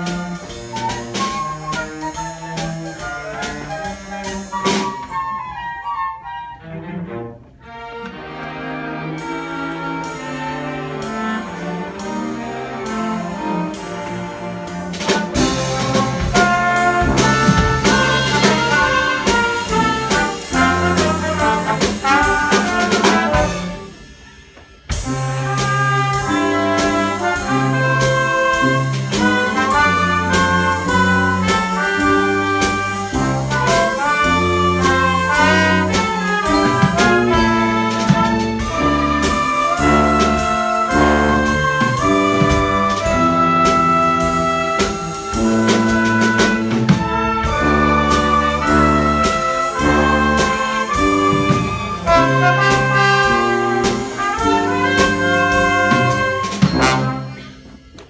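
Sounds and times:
drum strokes: 0.0s - 5.6s, 8.0s - 58.0s
violins and cellos: 0.0s - 24.1s, 25.0s - 58.0s
brass and strings chords: 0.0s - 58.0s
orchestra playing: 0.0s - 58.0s.

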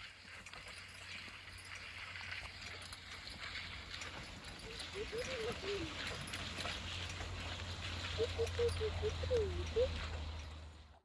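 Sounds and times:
horse hoofbeats walking: 0.0s - 11.0s.

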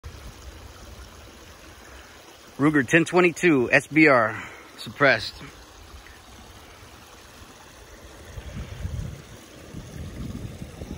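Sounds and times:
creek water trickling: 0.0s - 10.9s.

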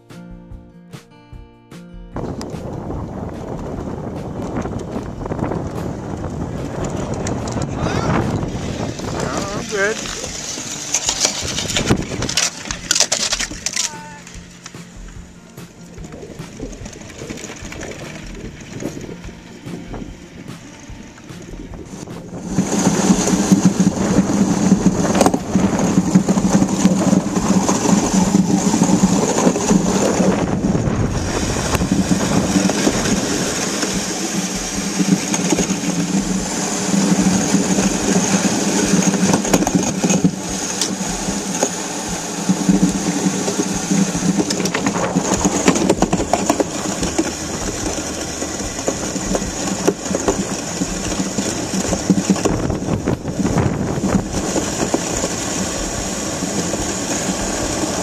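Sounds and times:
ice yacht runners rumbling on ice: 2.2s - 58.0s.

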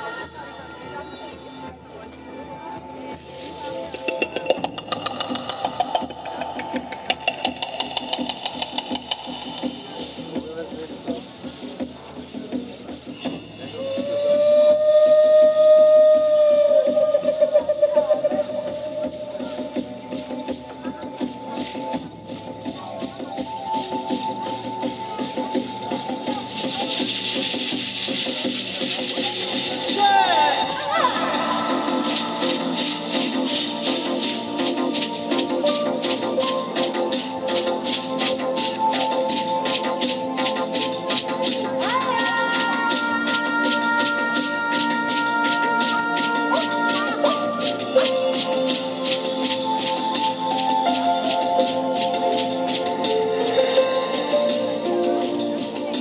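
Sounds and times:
soft musical accompaniment: 0.0s - 56.0s
wooden flute through speakers: 13.1s - 56.0s
shaker rattling: 19.6s - 56.0s.

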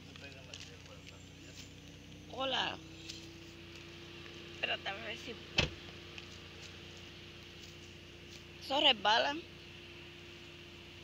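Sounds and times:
footsteps on dirt path: 0.0s - 4.8s, 5.6s - 8.7s.

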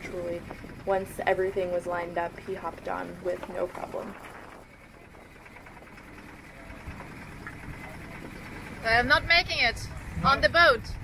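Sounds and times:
water rushing along hull: 0.0s - 11.0s
wind buffeting microphone: 0.0s - 11.0s.

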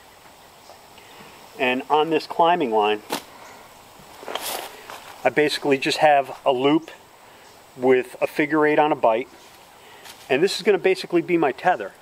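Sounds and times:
rope rustling through hands: 4.1s - 5.2s, 9.4s - 10.5s.

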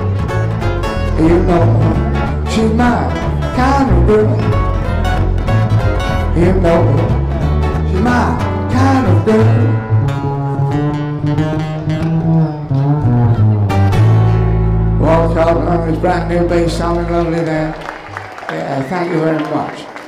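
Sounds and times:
acoustic string band playing: 0.0s - 17.7s.

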